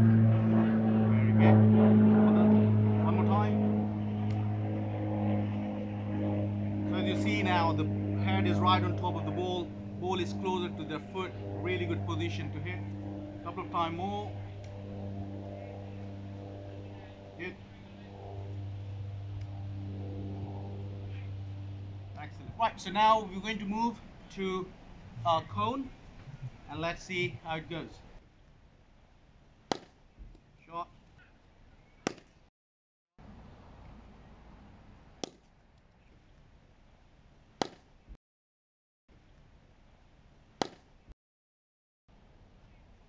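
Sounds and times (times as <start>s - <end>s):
steady low hum: 0.0s - 28.2s
faint outdoor hiss: 20.7s - 32.0s
cricket bat striking ball: 29.7s - 30.0s, 32.1s - 32.3s, 37.6s - 37.8s, 40.6s - 40.9s.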